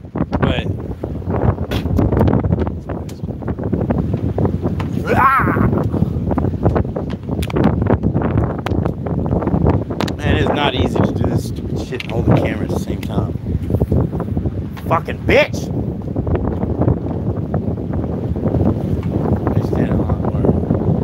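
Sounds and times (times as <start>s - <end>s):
steady boat rumble: 0.0s - 21.0s
wind buffeting microphone: 0.0s - 21.0s.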